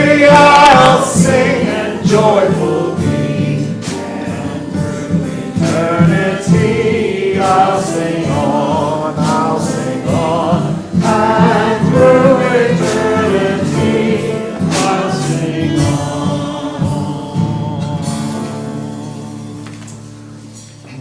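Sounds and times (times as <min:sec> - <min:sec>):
church choir singing: 0:00.0 - 0:20.6
instrumental accompaniment with beat: 0:00.0 - 0:20.9.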